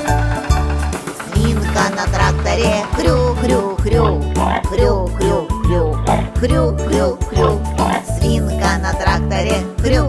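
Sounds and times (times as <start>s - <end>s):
children's song backing music: 0.0s - 10.0s
voice making pig oinks: 3.4s - 6.6s, 7.3s - 8.4s.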